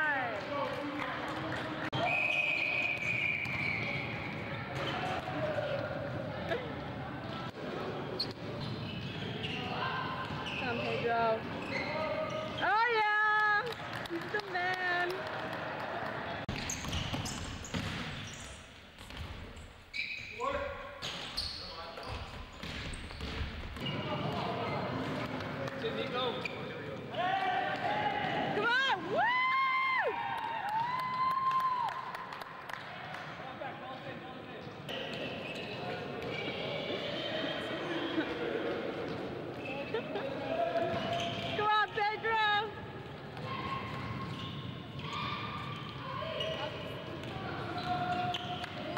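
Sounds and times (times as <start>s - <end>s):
sneakers squeaking: 1.9s - 13.2s, 16.4s - 27.1s, 34.5s - 48.9s
basketball bouncing on court: 16.5s - 19.6s, 22.0s - 25.3s.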